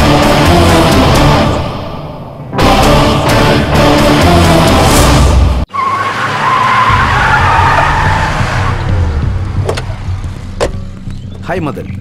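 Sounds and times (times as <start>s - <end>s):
film music: 0.0s - 11.7s
vehicle-like rushing with squeal: 5.7s - 9.9s.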